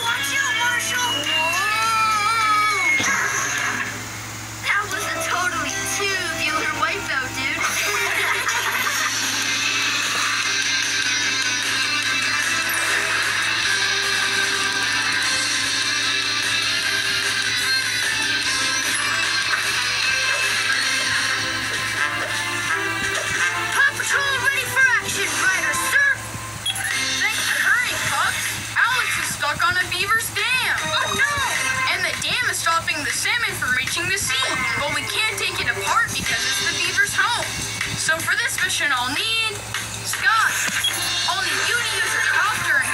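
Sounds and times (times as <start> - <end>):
cartoon music from television: 0.0 - 42.9.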